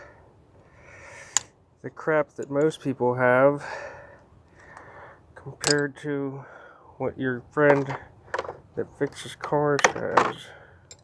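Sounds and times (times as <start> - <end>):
person speaking: 5.4 - 10.6.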